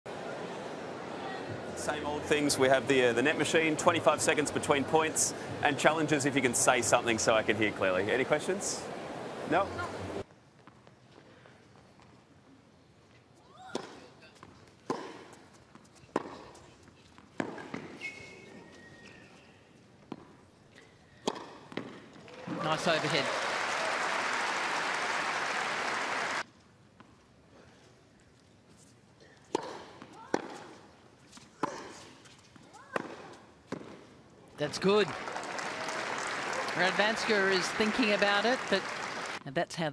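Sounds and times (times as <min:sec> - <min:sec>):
low crowd ambience: 0:00.1 - 0:39.9
racket striking tennis ball: 0:21.2 - 0:22.0, 0:29.5 - 0:30.8, 0:32.9 - 0:34.0
stadium crowd applauding: 0:22.2 - 0:26.4, 0:34.6 - 0:39.4.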